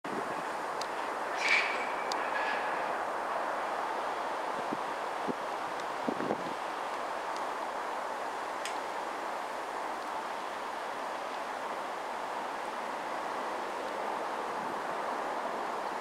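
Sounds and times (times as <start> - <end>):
high squeal: 1.3 - 3.0.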